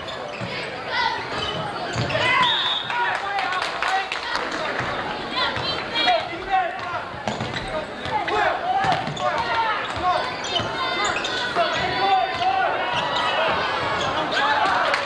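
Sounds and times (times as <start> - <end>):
spectators' voices and shouts: 0.0 - 15.0.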